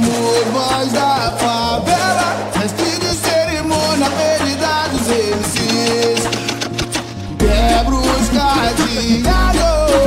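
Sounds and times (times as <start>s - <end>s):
funk track with heavy bass: 0.0s - 10.0s.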